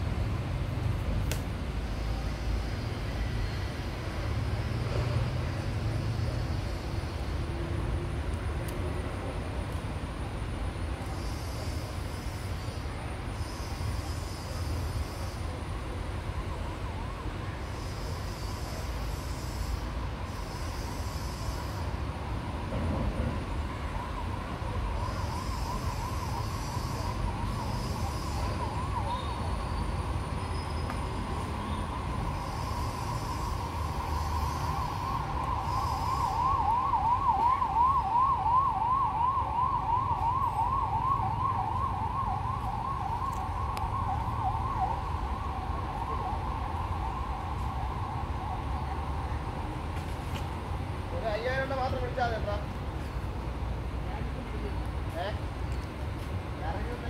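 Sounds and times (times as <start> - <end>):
siren warbling yelp: 23.6 - 29.9, 31.9 - 49.4.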